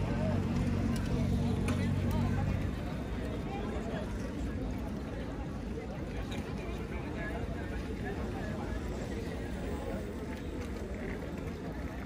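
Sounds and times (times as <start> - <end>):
faint voices of people passing: 0.0 - 12.0.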